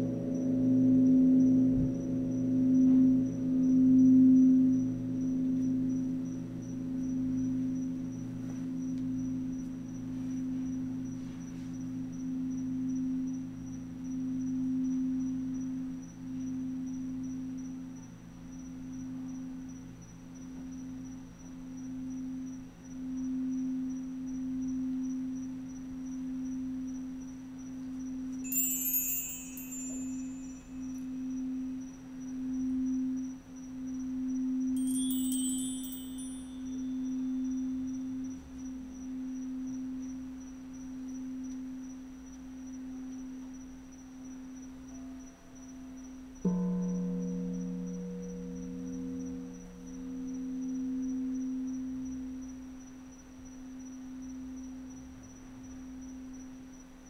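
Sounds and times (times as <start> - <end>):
singing bowls humming: 21.9 - 38.5
shimmering high chimes: 28.4 - 31.3, 34.8 - 37.6.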